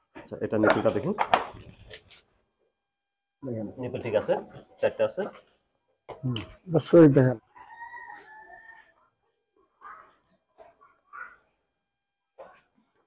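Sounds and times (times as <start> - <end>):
distant rooster crowing: 7.4 - 9.2.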